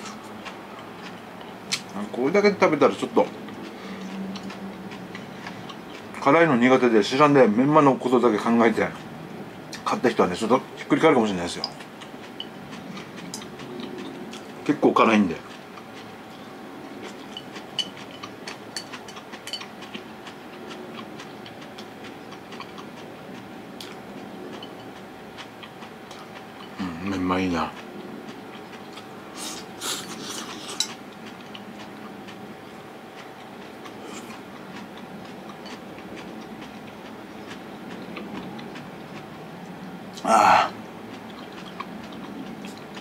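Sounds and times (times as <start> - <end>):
person chewing noodles: 0.0 - 2.0, 3.2 - 6.2, 11.6 - 14.6, 15.4 - 43.0
faint steady hum: 0.0 - 43.0.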